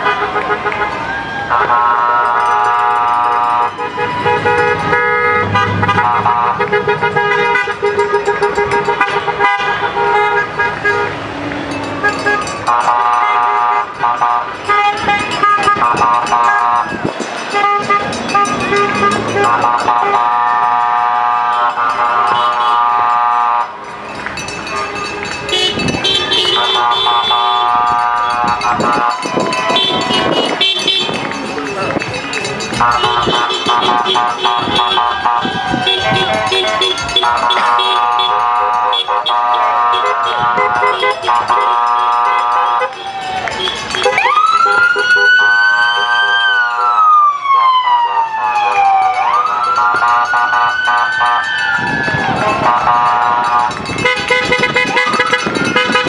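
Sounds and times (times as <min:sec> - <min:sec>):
car horns honking: 0:00.0 - 0:47.1, 0:48.6 - 0:56.0.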